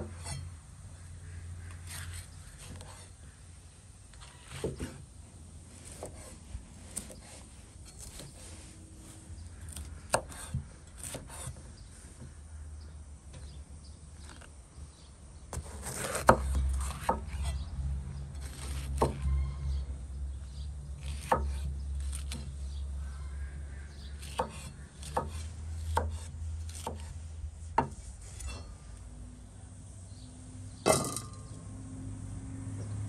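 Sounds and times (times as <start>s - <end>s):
knife chopping on wooden board: 9.7s - 11.6s, 15.5s - 17.5s, 21.0s - 22.5s, 24.2s - 27.1s, 27.8s - 28.0s.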